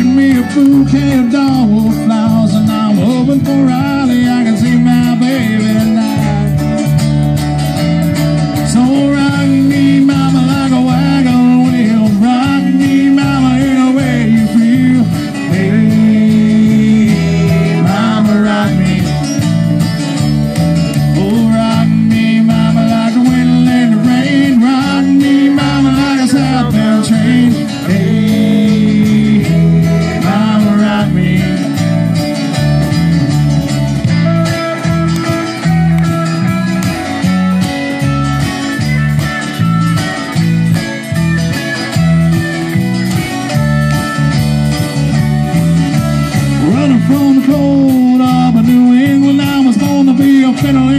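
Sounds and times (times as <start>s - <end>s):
country-rock band playing: 0.0s - 50.9s.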